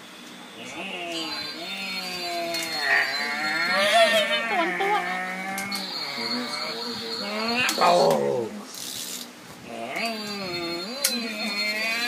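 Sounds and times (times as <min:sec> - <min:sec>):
person imitating car noise: 0:00.6 - 0:08.6.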